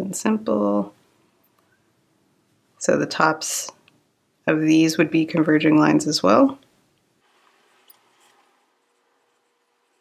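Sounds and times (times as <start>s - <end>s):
pencil scratching on paper: 7.2s - 10.0s.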